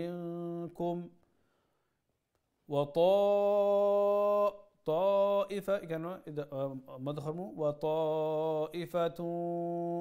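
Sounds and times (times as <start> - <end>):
man chanting recitation: 0.0 - 1.2, 2.7 - 10.0.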